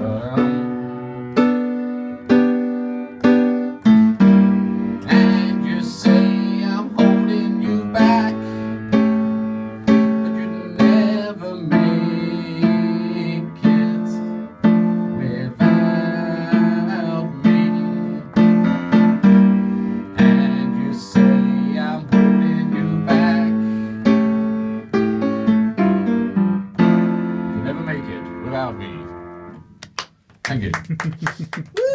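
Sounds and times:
upright piano chords: 0:00.0 - 0:29.9.

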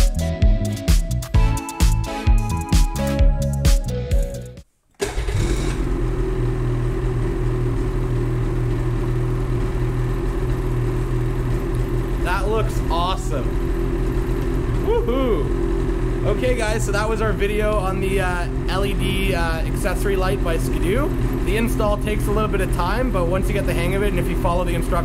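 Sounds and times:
background music: 0:00.0 - 0:04.7
snowmobile engine idling: 0:05.0 - 0:25.0.

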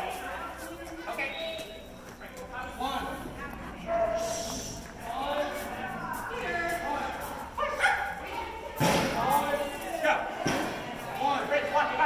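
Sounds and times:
voices echoing in hall: 0:00.0 - 0:12.0.

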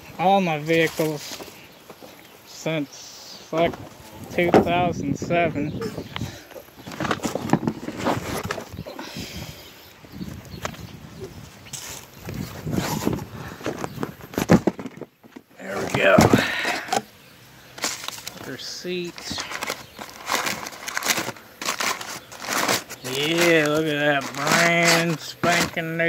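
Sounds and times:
cardboard and paper rustling: 0:00.4 - 0:02.1, 0:06.8 - 0:08.8, 0:11.7 - 0:17.0, 0:17.7 - 0:26.0.

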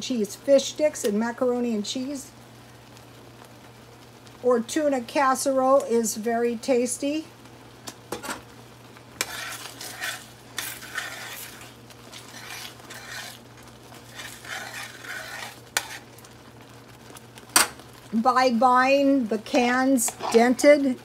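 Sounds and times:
spoon scraping sauce in a pan: 0:09.2 - 0:16.2, 0:20.0 - 0:20.6.

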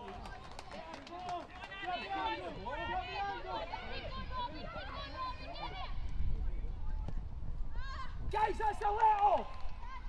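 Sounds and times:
outdoor ground noise: 0:00.0 - 0:10.0.

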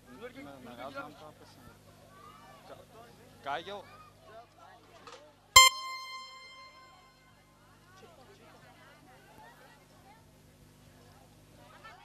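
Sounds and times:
high electronic keyboard note: 0:05.6 - 0:07.0.

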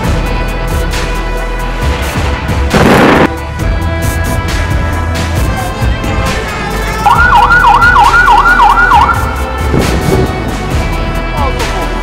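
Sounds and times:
background music: 0:00.0 - 0:12.0
siren warbling: 0:07.1 - 0:09.3.

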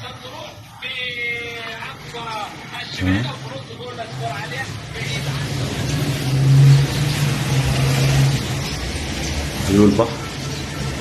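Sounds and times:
traffic noise: 0:00.0 - 0:11.0
vehicle engine hum: 0:00.9 - 0:11.0.

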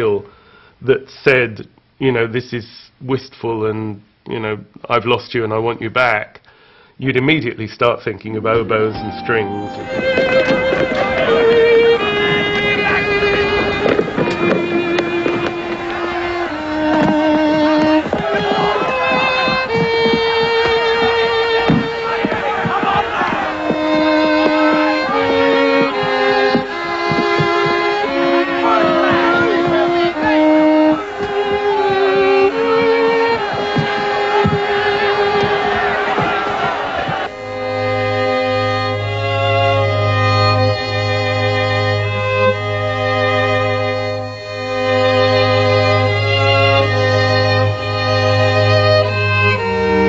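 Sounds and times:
string ensemble playing: 0:08.5 - 0:50.0
crowd noise: 0:08.6 - 0:39.0.

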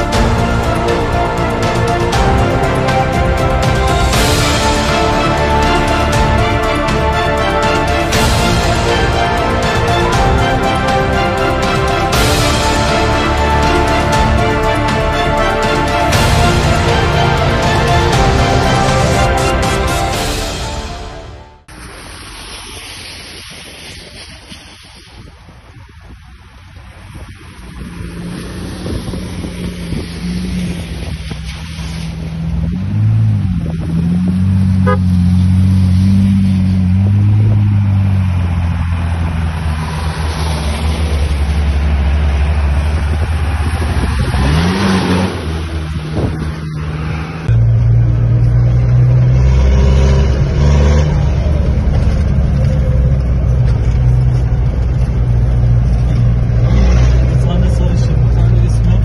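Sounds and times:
low engine drone: 0:00.0 - 0:24.4, 0:26.5 - 0:59.0
off-road vehicle engines revving: 0:26.9 - 0:59.0.

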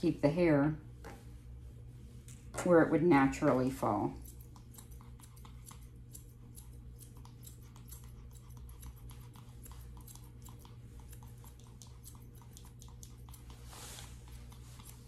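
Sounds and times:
low steady hum: 0:00.0 - 0:15.0
scissors snipping hair: 0:03.5 - 0:15.0.

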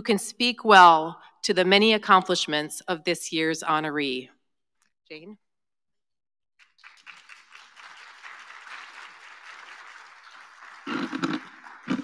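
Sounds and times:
audience applauding: 0:06.6 - 0:12.0.

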